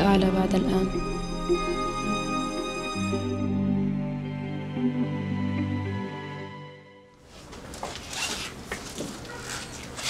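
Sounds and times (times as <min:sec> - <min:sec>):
clothes rustling: 0:07.2 - 0:10.0.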